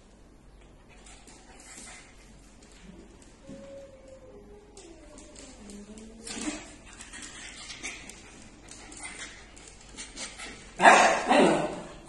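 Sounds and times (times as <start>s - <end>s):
faint scattered sounds: 0.4s - 10.8s
small dog barking: 10.8s - 11.3s.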